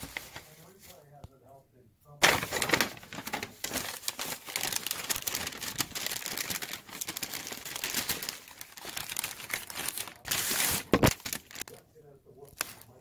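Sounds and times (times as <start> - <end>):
paper wrapper crinkling: 0.0 - 1.1, 2.2 - 11.8, 12.4 - 13.0.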